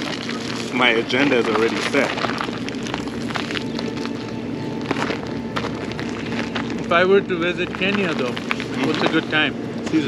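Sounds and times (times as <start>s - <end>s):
paper bag rustling: 0.0s - 9.5s
small crackles: 0.0s - 10.0s
steady low hum: 0.0s - 10.0s.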